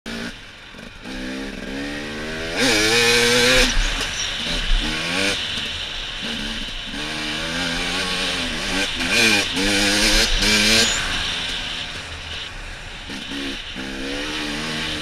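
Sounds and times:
dirt bike engine revving: 0:00.1 - 0:15.0.

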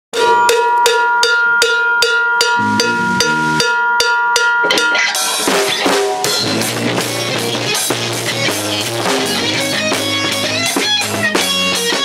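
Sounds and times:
ringing metal drum strikes: 0:00.1 - 0:11.9
low guitar chords: 0:02.6 - 0:03.7, 0:05.0 - 0:12.0.

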